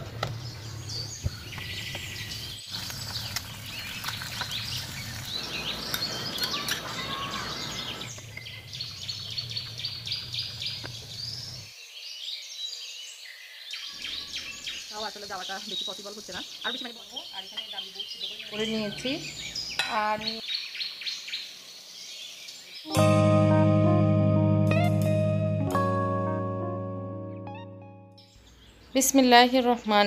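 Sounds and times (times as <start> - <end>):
small birds chirping: 0.1 - 22.9, 28.2 - 30.0.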